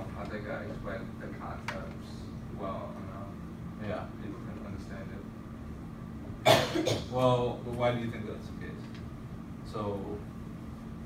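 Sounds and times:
faint room hum: 0:00.0 - 0:11.0
person coughing: 0:06.4 - 0:07.2.

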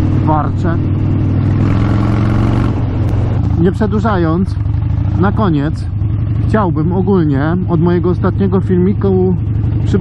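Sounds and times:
motorcycle engine running: 0:00.0 - 0:10.0.

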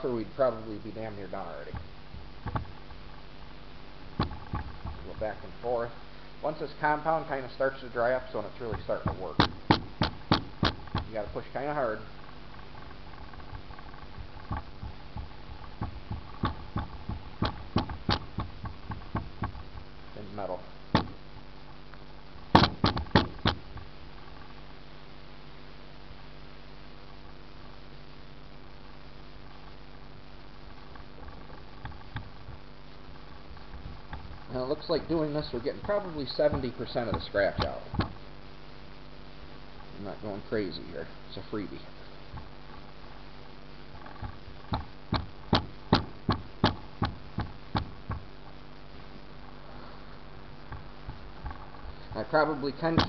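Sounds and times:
faint steady hiss: 0:00.0 - 0:53.0
sharp knocks on metal hood: 0:22.6 - 0:23.6.

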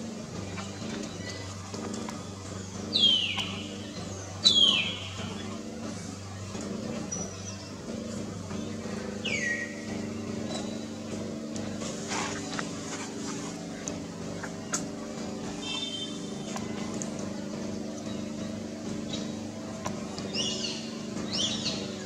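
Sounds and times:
vehicle engine idling: 0:00.0 - 0:22.0.

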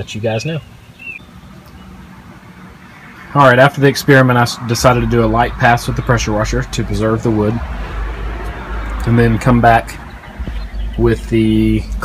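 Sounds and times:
low hum: 0:01.2 - 0:12.0.

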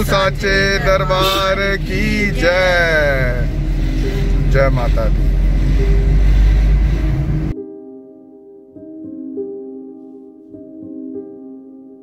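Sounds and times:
person's drawn-out voice: 0:00.0 - 0:03.3
car interior rumble: 0:00.0 - 0:07.6.

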